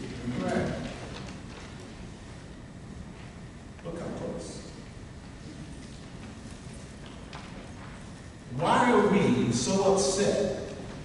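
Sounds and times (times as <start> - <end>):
lecture hall background: 0.0 - 11.0
man speaking: 8.5 - 10.7.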